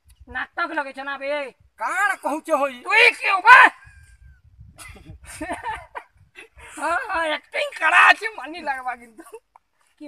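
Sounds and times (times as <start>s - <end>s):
wind rumble on microphone: 3.7s - 7.3s.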